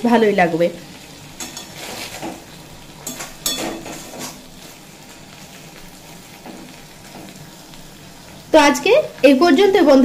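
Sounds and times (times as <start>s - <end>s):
okra sizzling in a pan: 0.0s - 10.0s
metal spatula scraping pan: 1.4s - 4.8s.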